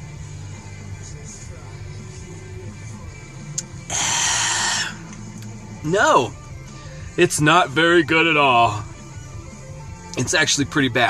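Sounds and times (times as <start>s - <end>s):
quiet background music: 0.0s - 11.0s
loud breathy exhale: 3.9s - 5.1s.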